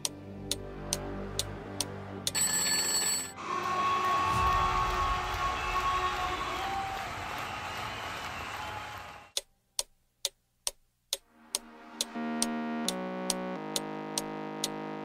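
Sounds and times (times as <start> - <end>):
clock ticking: 0.0 - 3.2, 9.4 - 15.0
timer bell ringing: 2.3 - 3.4
stadium crowd noise: 3.4 - 9.4.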